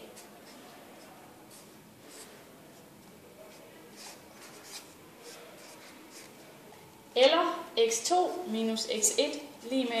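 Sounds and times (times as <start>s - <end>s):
marker scratching on paper: 0.1s - 2.4s, 3.5s - 6.4s.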